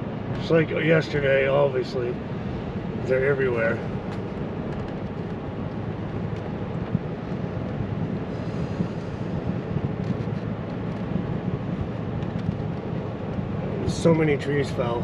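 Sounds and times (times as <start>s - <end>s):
truck engine and tyre noise: 0.0s - 15.0s.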